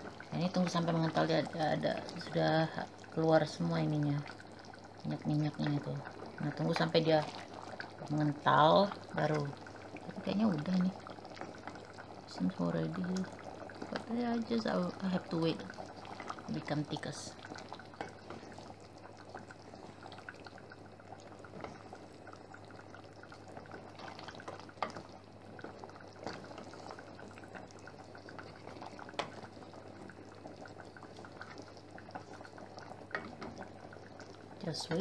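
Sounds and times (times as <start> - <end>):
sauce bubbling in a pot: 0.0 - 35.0.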